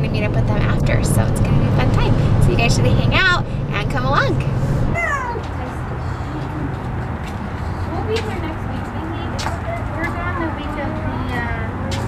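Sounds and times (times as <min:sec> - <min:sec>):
low rumble inside car: 0:00.0 - 0:05.5
high-pitched falling vocal cry: 0:04.9 - 0:05.4.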